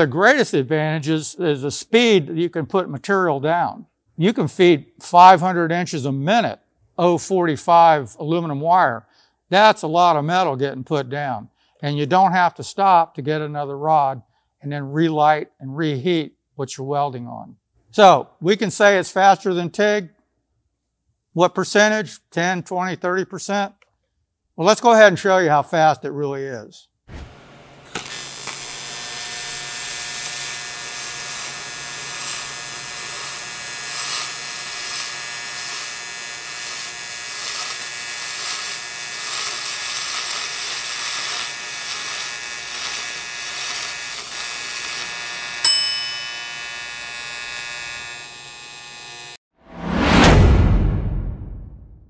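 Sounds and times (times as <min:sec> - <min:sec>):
electric buzz of arc welding: 0:27.1 - 0:49.4
bell-like ding: 0:45.7 - 0:46.8
loud whoosh: 0:49.6 - 0:52.0.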